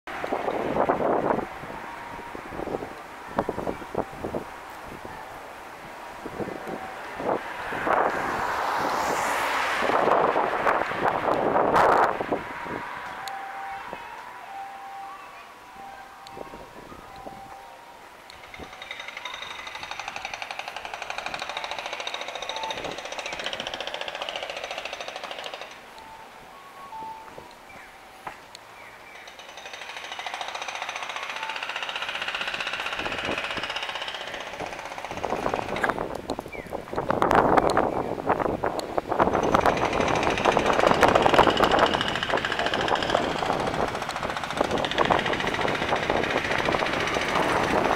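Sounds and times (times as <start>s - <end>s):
loud rush of noise: 0.1s - 26.6s, 29.4s - 47.9s.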